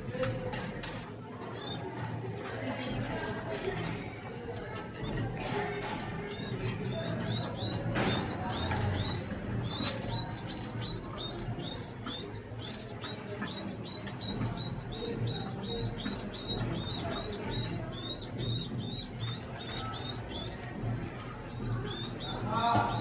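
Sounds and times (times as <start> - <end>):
pigeon squabs squeaking: 4.9 - 23.0.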